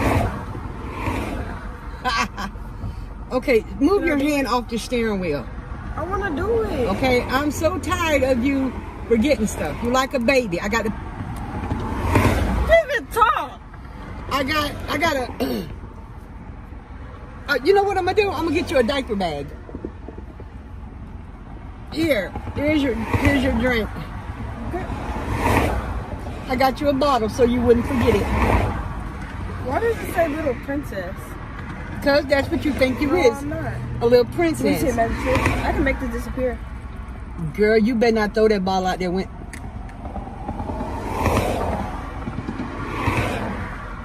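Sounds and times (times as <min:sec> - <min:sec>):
car engine rumble: 0:00.0 - 0:44.0
road noise: 0:00.0 - 0:44.0.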